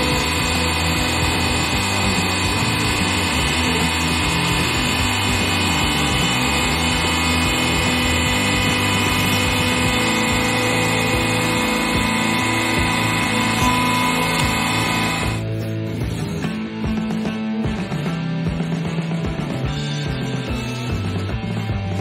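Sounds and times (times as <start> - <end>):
hydraulic press pump humming: 0.0 - 15.5.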